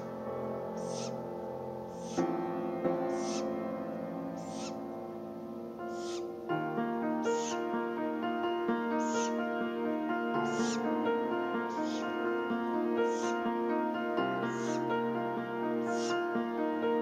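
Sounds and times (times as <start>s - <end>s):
sustained background music: 0.0s - 17.0s
owl chick rasping call: 0.7s - 1.2s, 1.9s - 2.3s, 3.1s - 3.5s, 4.3s - 4.8s, 5.8s - 6.3s, 7.2s - 7.7s, 9.0s - 9.4s, 10.4s - 10.8s, 11.7s - 12.2s, 13.0s - 13.4s, 14.5s - 14.9s, 15.8s - 16.2s.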